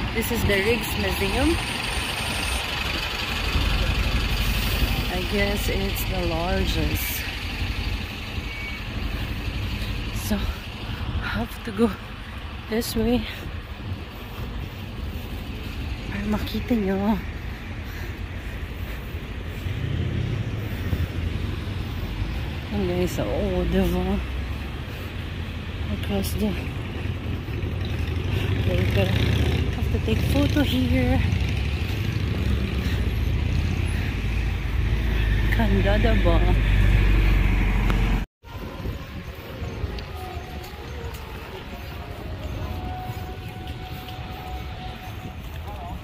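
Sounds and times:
car passing: 0.0s - 38.3s
street traffic rumble: 0.0s - 46.0s.

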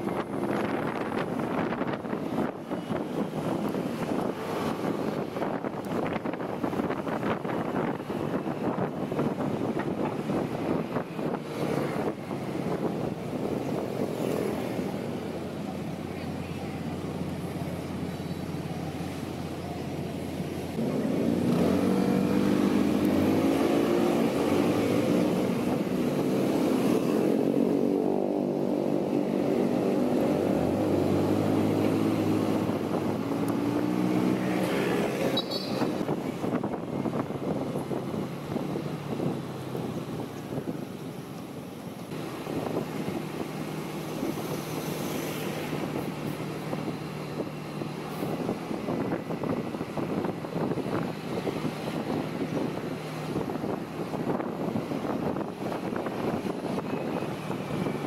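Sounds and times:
wind and road noise: 0.0s - 58.0s
scooter engine accelerating: 20.8s - 39.6s.

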